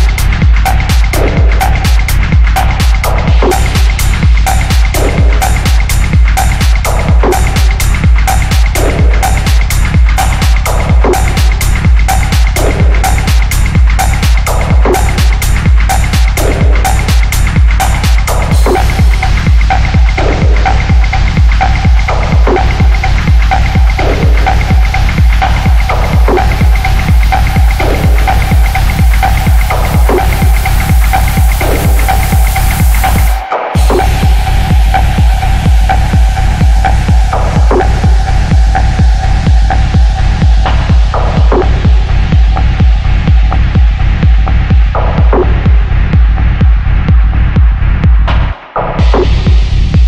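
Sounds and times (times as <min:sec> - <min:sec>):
bass: 0:00.0 - 0:50.0
electronic dance music: 0:00.0 - 0:50.0
techno kick drum beat: 0:00.0 - 0:50.0.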